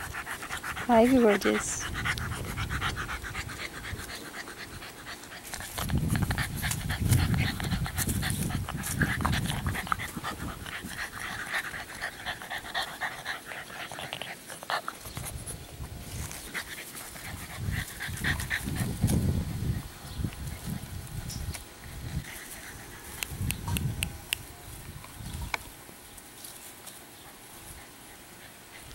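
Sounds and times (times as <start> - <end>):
puppy panting: 0.0 - 15.6, 16.3 - 19.1, 27.2 - 28.9.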